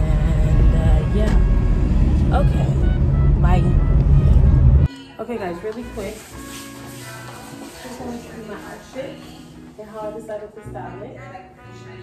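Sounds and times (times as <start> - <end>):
car cabin rumble: 0.0 - 4.9.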